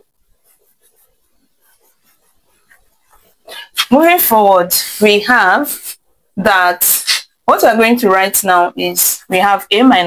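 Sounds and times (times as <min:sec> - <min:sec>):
cloth wiping whiteboard: 0:00.0 - 0:06.0
woman speaking: 0:03.5 - 0:10.0.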